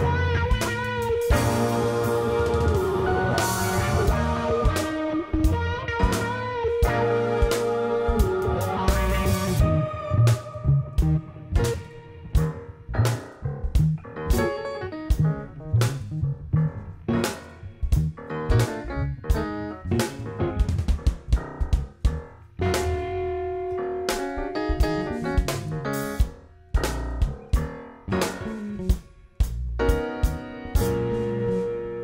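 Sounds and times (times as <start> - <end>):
electric guitar: 0.0 - 16.0, 22.6 - 29.2, 29.8 - 32.0
drum kit beat: 0.0 - 16.2, 17.1 - 32.0
electric bass: 0.0 - 32.0.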